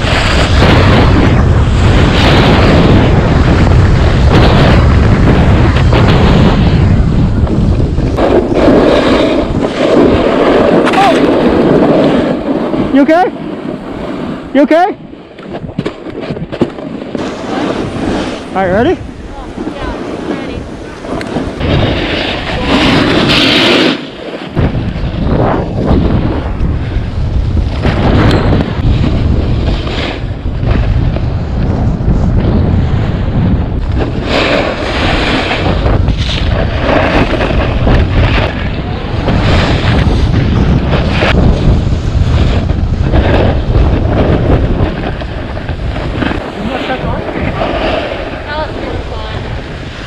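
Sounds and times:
skis scraping on hard snow: 0.0s - 14.8s, 15.4s - 33.2s, 33.8s - 50.0s
wind buffeting microphone: 0.0s - 50.0s.

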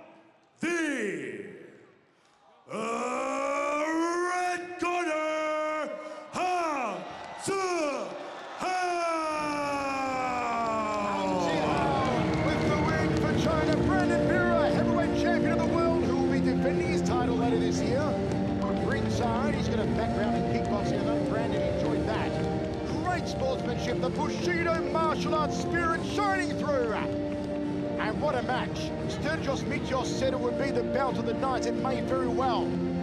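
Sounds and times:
announcer calling out: 0.6s - 1.4s, 3.6s - 8.1s
arena music: 3.6s - 33.0s
crowd noise: 6.3s - 33.0s.

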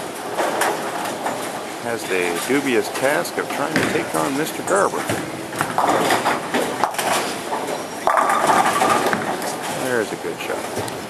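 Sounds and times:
bowling pins clattering: 0.0s - 11.0s
din of bowling lanes: 0.0s - 11.0s
bowling ball rolling: 0.2s - 9.8s.

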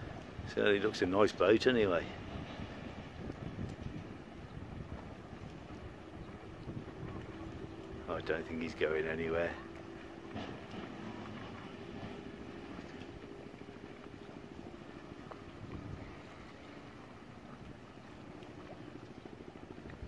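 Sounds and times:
boat engine running: 0.0s - 20.0s
wind on microphone: 0.0s - 20.0s.

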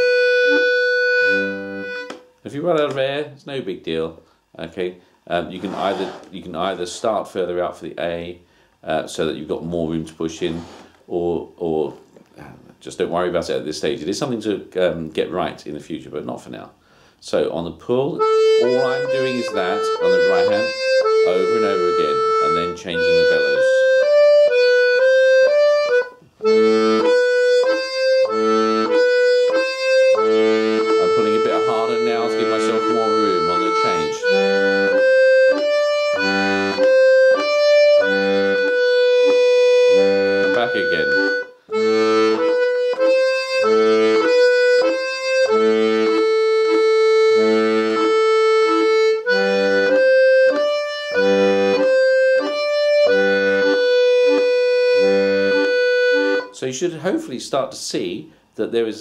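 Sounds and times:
button accordion playing: 0.0s - 2.3s, 5.5s - 6.8s, 18.2s - 56.6s.

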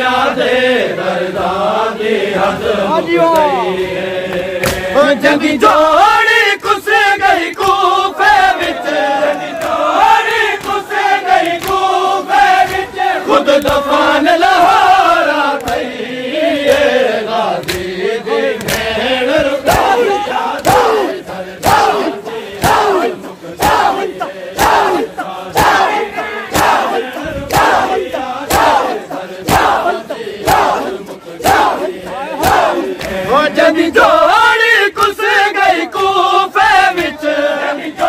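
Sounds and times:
men chanting in unison: 0.0s - 38.0s
hands slapping chests: 4.3s - 5.0s, 6.6s - 7.9s, 8.6s - 14.0s, 15.5s - 16.0s, 16.6s - 33.3s.

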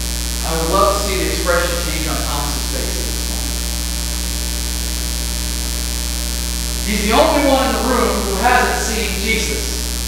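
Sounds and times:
electrical mains hum: 0.0s - 10.0s
man's voice: 0.4s - 3.8s, 6.8s - 10.0s.

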